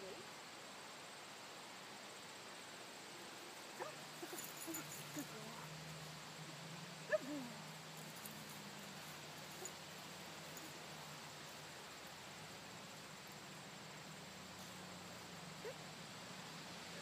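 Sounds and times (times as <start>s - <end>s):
dog whining: 3.8s - 5.6s.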